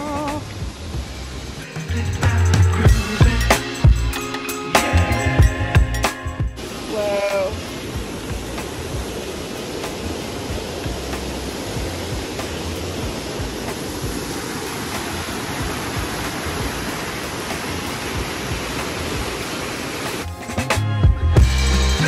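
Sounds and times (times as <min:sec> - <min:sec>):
whitewater stream and waterfall: 0:00.0 - 0:20.3
music with drums: 0:00.0 - 0:22.0.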